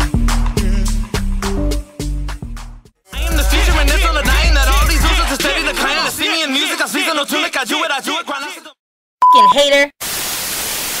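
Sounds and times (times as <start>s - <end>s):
short steady beep: 9.2s - 9.6s
tv static hiss: 10.0s - 11.0s.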